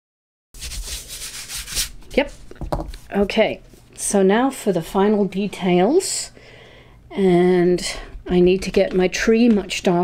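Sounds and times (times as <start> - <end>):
hand brushing across paper: 0.6 - 2.4.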